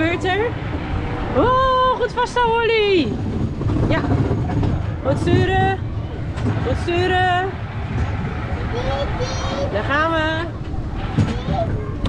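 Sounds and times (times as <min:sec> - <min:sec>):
ride car rumbling on rail: 0:00.0 - 0:12.0.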